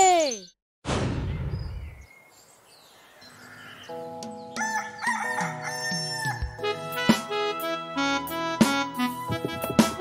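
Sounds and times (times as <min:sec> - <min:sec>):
children's song music: 0:03.9 - 0:10.0
rooster crowing: 0:04.6 - 0:06.5.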